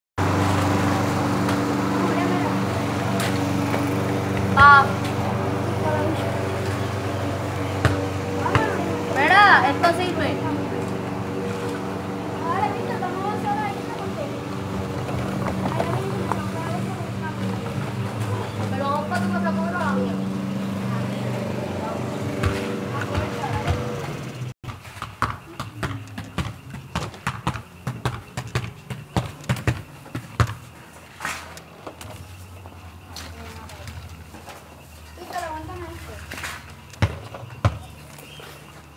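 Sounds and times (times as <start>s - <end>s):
steady motor hum: 0.2s - 24.5s
voices: 0.2s - 24.5s, 25.2s - 38.9s.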